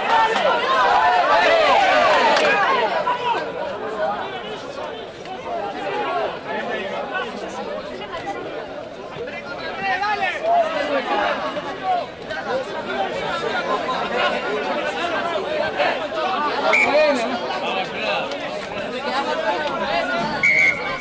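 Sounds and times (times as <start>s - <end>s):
crowd shouting and calling: 0.0s - 21.0s.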